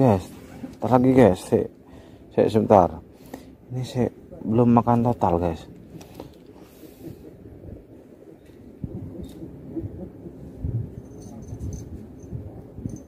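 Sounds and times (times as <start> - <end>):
low uneven rumble: 0.0 - 13.0.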